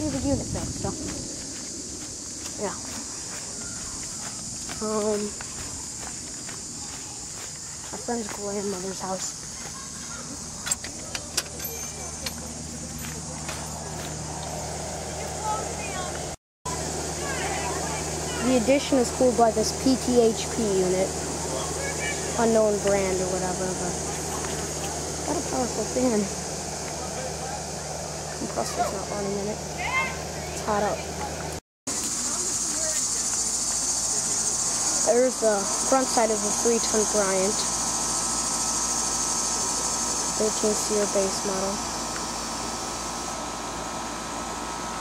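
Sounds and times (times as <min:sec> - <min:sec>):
air conditioner humming: 0:00.0 - 0:45.0
insects chorus: 0:00.0 - 0:45.0.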